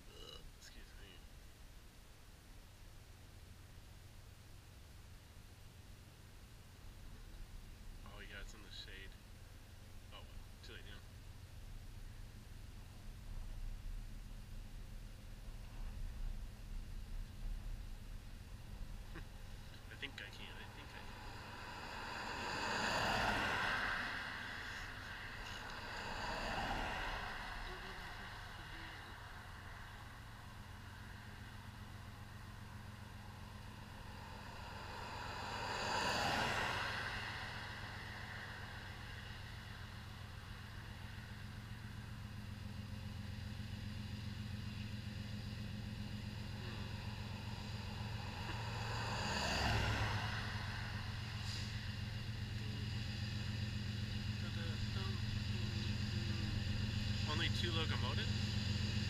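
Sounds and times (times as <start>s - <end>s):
cars passing on highway: 1.0s - 59.0s
freight train locomotives rumbling: 45.6s - 59.0s.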